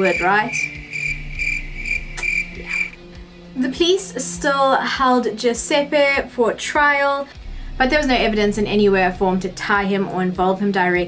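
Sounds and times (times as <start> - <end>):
crickets chirping: 0.0 - 3.2.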